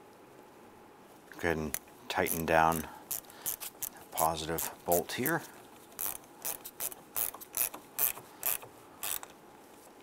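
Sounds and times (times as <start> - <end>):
ratchet clicking: 2.3 - 4.0, 6.0 - 9.3.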